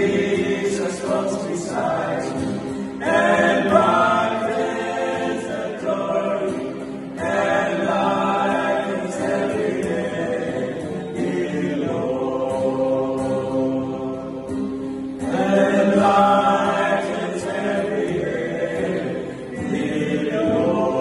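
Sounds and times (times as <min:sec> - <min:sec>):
acoustic guitar: 0:00.0 - 0:21.0
male vocal group singing a hymn: 0:00.0 - 0:21.0.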